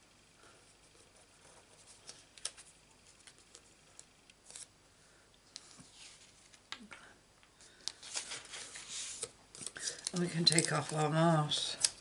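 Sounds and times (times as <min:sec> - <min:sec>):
paper rustling: 0:07.7 - 0:12.0.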